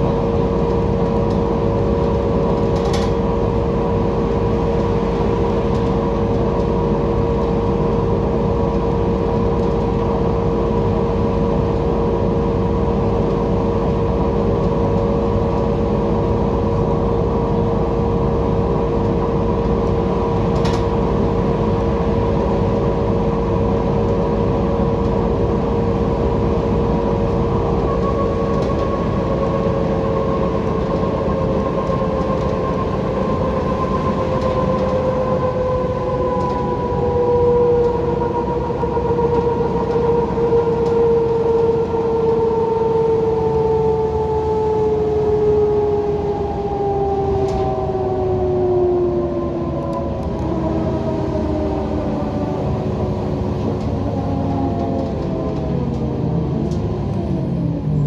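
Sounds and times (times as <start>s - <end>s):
bus engine and road rumble: 0.0s - 58.0s
driveline whine: 0.0s - 58.0s.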